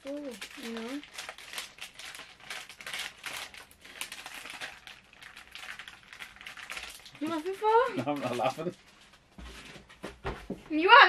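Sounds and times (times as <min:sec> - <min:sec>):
plastic packaging crinkling: 0:00.0 - 0:08.8.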